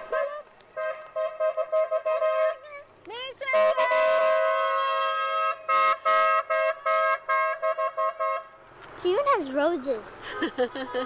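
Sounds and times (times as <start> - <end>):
two-tone car horn honking: 0.0 - 2.7, 3.4 - 8.6.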